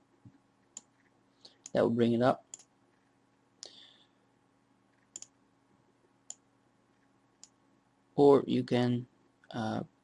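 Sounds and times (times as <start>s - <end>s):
computer mouse clicks: 0.6s - 1.8s, 2.5s - 3.1s, 4.9s - 5.4s, 7.0s - 7.6s.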